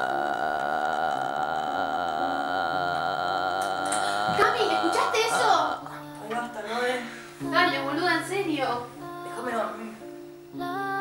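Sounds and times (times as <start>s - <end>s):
eerie synthesized drone: 0.0s - 6.0s.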